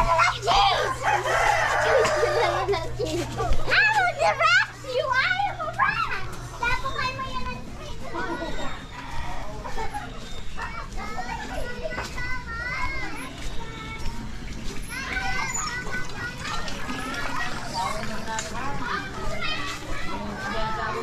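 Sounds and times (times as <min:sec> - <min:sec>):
children calling and chattering: 0:00.0 - 0:21.0.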